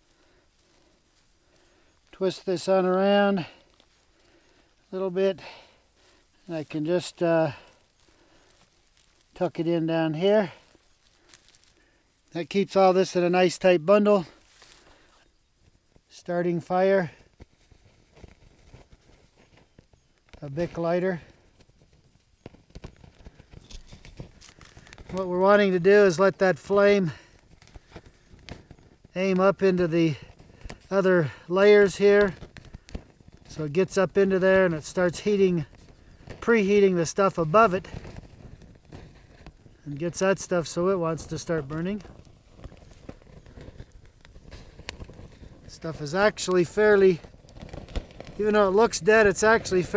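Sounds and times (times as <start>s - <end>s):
dry pine needles crackling in flame: 0.0s - 49.9s
sharp fire pops: 0.0s - 49.9s.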